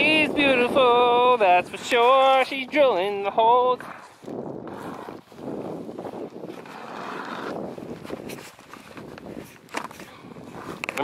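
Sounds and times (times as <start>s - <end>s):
ice auger grinding ice: 4.7s - 9.1s.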